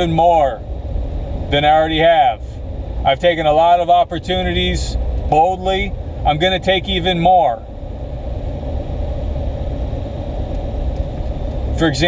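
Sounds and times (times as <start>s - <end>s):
constant hum: 0.0s - 12.0s
steady low rumble: 0.0s - 12.0s.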